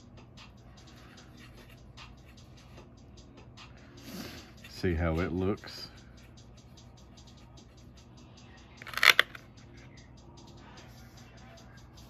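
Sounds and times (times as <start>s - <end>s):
faint music with ticking beat: 0.0s - 12.0s.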